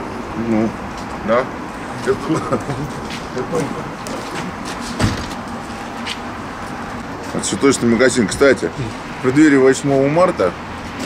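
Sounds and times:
city street traffic: 0:00.0 - 0:11.0
dull thump: 0:05.0 - 0:05.4.

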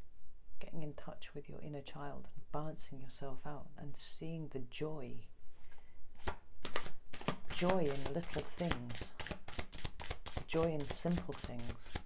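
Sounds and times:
card snapping: 0:06.2 - 0:12.0
cards being shuffled: 0:06.2 - 0:12.0.

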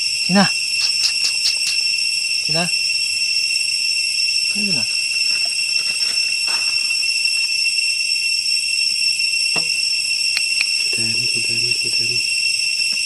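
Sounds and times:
shrill insect chorus: 0:00.0 - 0:13.0.

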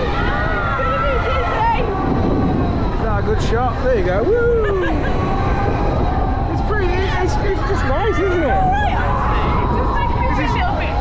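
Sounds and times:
wind rushing over microphone: 0:00.0 - 0:11.0.

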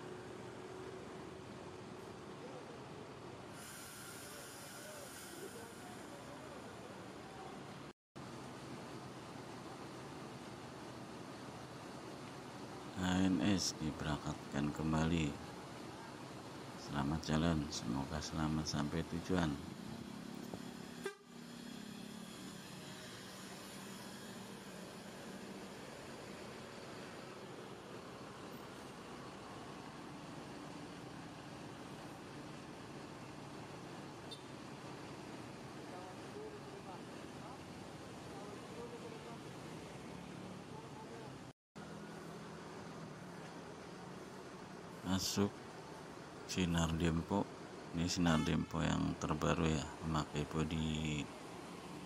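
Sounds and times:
steady high hiss: 0:03.4 - 0:07.7.

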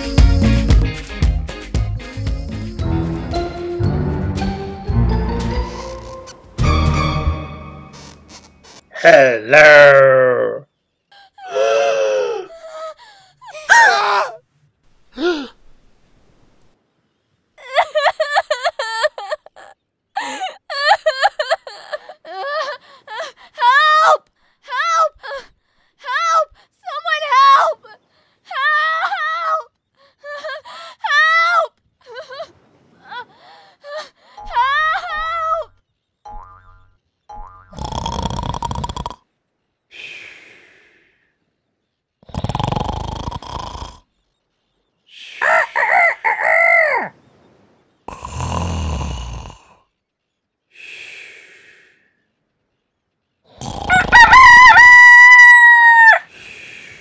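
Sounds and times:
cartoon voice wailing and groaning: 0:09.0 - 0:10.6
cartoon voices crying out in alarm: 0:34.4 - 0:35.7.

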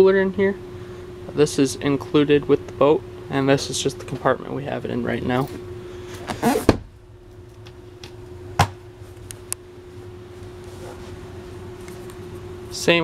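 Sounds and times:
steady low hum: 0:00.0 - 0:13.0
storage lid thump: 0:08.6 - 0:08.8.

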